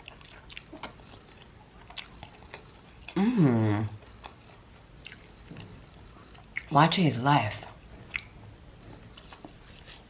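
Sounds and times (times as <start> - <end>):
person chewing food: 0.0 - 6.7, 7.7 - 10.0
wet mouth clicks and smacks: 5.0 - 5.2, 6.4 - 6.7, 8.1 - 8.4.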